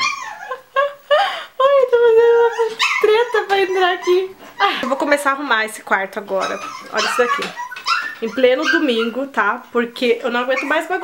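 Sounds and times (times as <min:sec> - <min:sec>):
small dog yipping: 0:00.0 - 0:00.6, 0:02.5 - 0:04.3, 0:06.4 - 0:09.2
dog whining: 0:00.0 - 0:00.8, 0:02.3 - 0:04.4, 0:06.3 - 0:09.3, 0:10.5 - 0:11.0.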